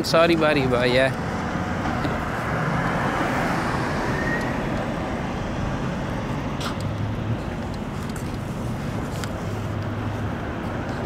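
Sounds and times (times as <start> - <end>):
passing cars: 0.0 - 11.0.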